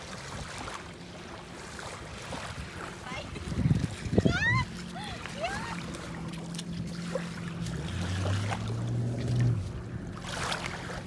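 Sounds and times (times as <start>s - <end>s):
motorboat engine humming: 0.0s - 11.0s
water sloshing from wading feet: 0.0s - 11.0s.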